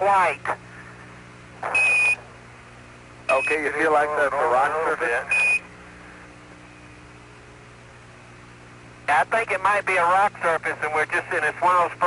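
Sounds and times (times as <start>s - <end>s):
radio hiss: 0.0s - 2.4s, 3.3s - 6.3s, 9.1s - 12.0s
high beep: 1.7s - 2.2s, 3.3s - 3.6s, 5.3s - 5.6s.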